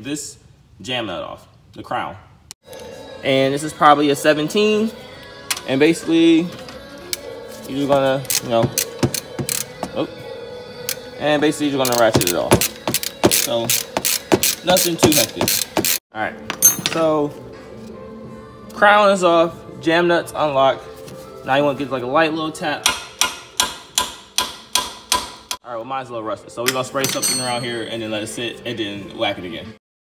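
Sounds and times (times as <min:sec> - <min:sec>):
ratchet wrench clicking: 0:08.3 - 0:09.7, 0:11.8 - 0:16.0
hammer striking steel: 0:16.5 - 0:17.2, 0:22.8 - 0:25.6, 0:26.7 - 0:28.0.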